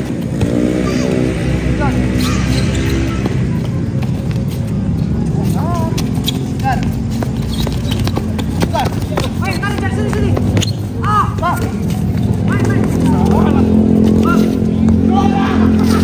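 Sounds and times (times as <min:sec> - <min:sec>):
ball kicked on cement court: 0:00.0 - 0:01.3, 0:02.8 - 0:13.4
players' short calls: 0:02.0 - 0:03.8, 0:05.4 - 0:16.0.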